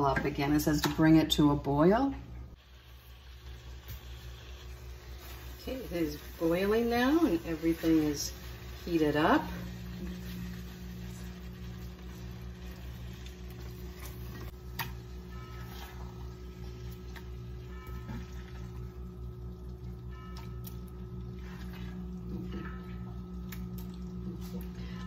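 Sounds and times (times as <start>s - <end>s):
steady low hum: 0.0s - 25.0s.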